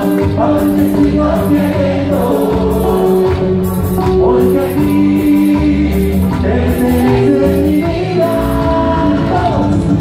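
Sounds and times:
electric bass: 0.0s - 10.0s
singing voices: 0.0s - 10.0s.

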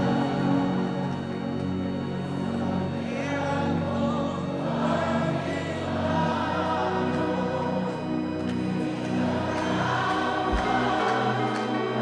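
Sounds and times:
group singing gospel: 0.0s - 12.0s
sustained instrumental backing: 0.0s - 12.0s.

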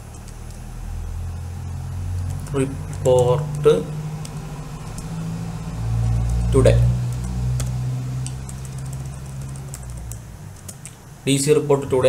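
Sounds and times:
low hum: 0.0s - 11.0s
keyboard keys clicking: 7.0s - 11.0s.

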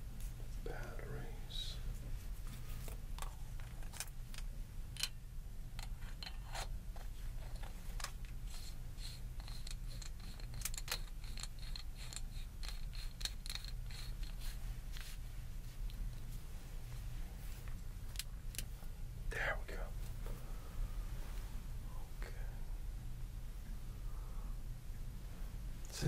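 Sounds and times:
faint low hum: 0.0s - 26.0s.

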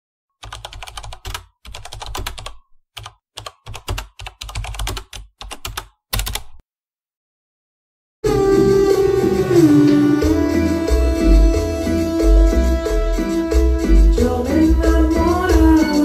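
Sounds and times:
computer keyboard typing: 0.4s - 6.6s.

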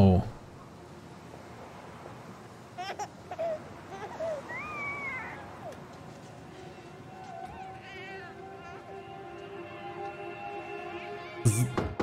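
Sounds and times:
baby crying: 2.8s - 5.8s, 7.3s - 8.8s
music: 8.1s - 12.0s.

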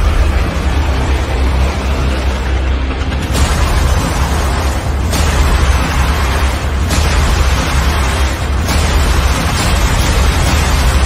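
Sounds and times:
deep rumble: 0.0s - 11.0s.

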